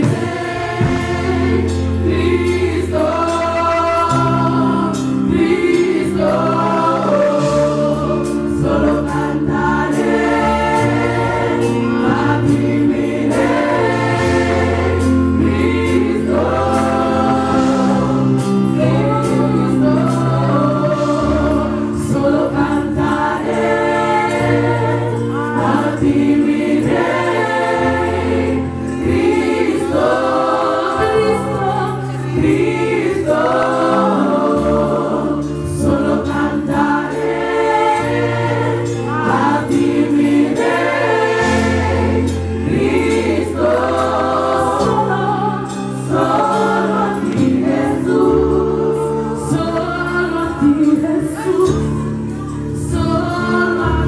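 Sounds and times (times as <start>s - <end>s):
instrumental accompaniment: 0.0s - 54.0s
women's backing choir: 0.0s - 54.0s
woman singing gospel song: 42.7s - 54.0s.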